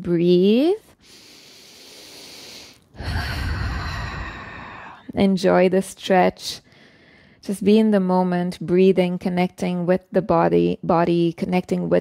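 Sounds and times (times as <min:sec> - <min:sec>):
woman breathing deeply: 0:01.0 - 0:05.1, 0:06.6 - 0:07.4.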